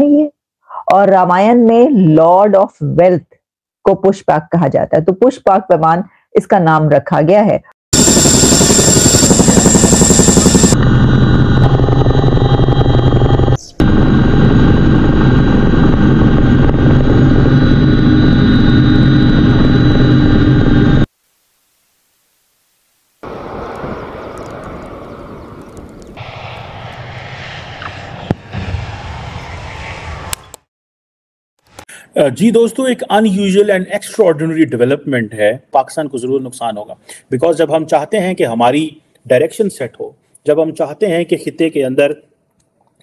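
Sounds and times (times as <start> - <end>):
helicopter turbine and rotor: 8.0 - 21.1, 23.2 - 29.9.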